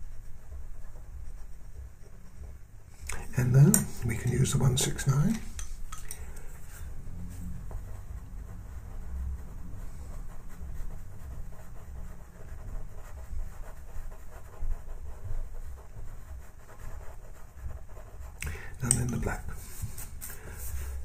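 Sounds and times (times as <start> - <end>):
pencil scratching on paper: 0.0 - 6.0, 6.6 - 21.0.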